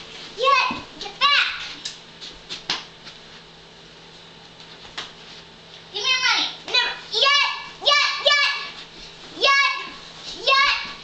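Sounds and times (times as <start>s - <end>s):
girl shouting: 0.4s - 1.7s, 6.0s - 8.8s, 9.4s - 11.0s.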